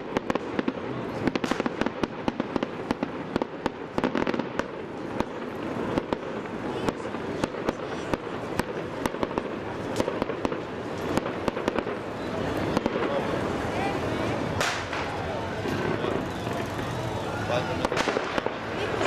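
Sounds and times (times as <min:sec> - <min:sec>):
fireworks bangs and crackles: 0:00.0 - 0:19.0
people talking: 0:00.6 - 0:01.7, 0:05.0 - 0:19.0.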